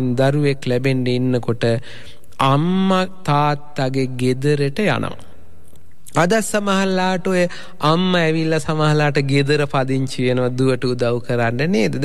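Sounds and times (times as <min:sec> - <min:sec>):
man chanting sermon: 0:00.0 - 0:05.3, 0:06.1 - 0:12.0.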